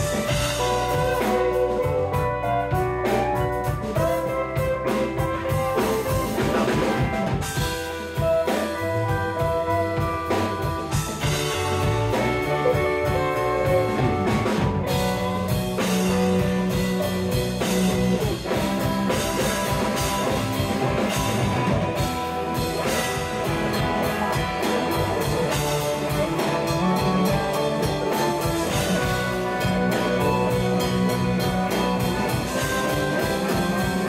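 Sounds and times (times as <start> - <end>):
bass guitar: 0.0 - 34.0
drum kit steady beat: 0.0 - 34.0
electric guitars: 0.0 - 34.0.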